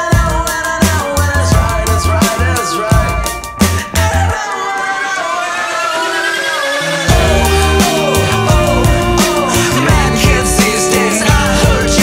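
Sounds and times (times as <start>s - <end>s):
sustained gliding instrument notes: 5.3s - 10.5s
low bass note: 7.1s - 9.2s.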